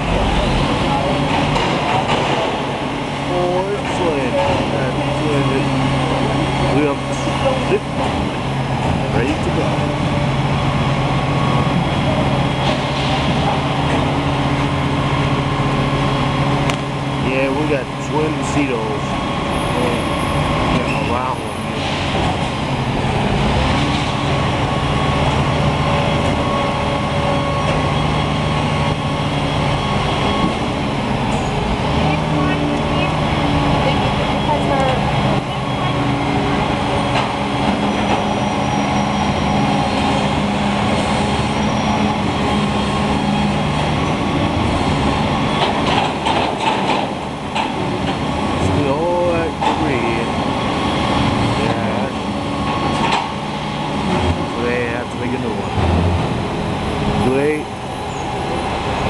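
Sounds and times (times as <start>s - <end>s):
diesel truck engine running: 0.0s - 59.0s.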